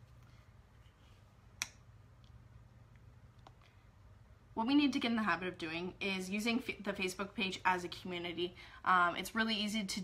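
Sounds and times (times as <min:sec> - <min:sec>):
faint low hum: 0:00.0 - 0:10.0.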